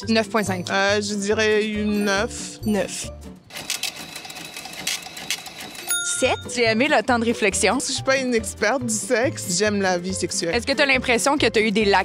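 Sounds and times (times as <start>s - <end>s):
rapid mechanical timer ticking: 3.5s - 5.9s.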